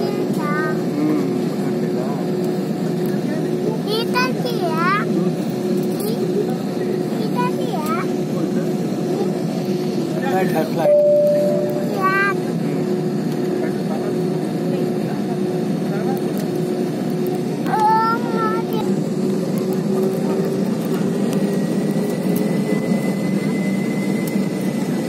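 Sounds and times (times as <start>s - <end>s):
jet engine and cabin air hum: 0.0s - 25.0s
passengers chatting: 0.0s - 25.0s
short high tone: 10.9s - 12.2s.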